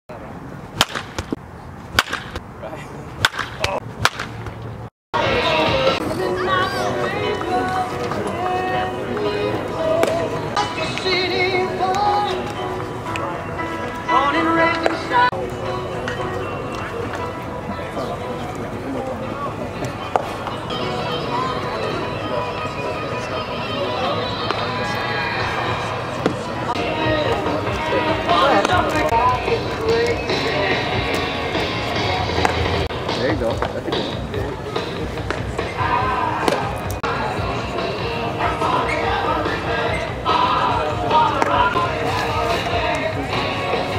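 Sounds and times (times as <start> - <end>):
outdoor ambience: 0.1 - 43.9
baseball popping into mitt: 0.8 - 1.4, 2.0 - 2.4, 3.2 - 4.6
sharp cracks: 0.8 - 1.4, 2.0 - 2.4, 3.2 - 4.6
indistinct crowd voices: 5.2 - 43.9
music: 5.2 - 43.9.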